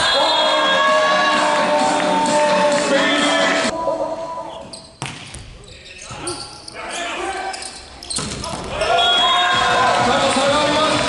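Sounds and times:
crowd noise: 0.0s - 4.7s, 6.1s - 11.0s.

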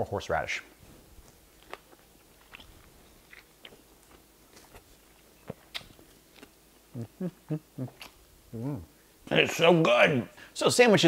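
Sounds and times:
person chewing food: 1.2s - 8.8s.

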